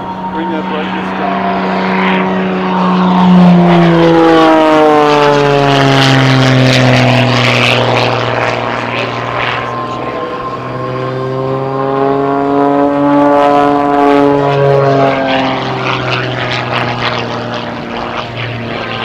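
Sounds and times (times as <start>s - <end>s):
plane engine and propeller: 0.0s - 19.0s.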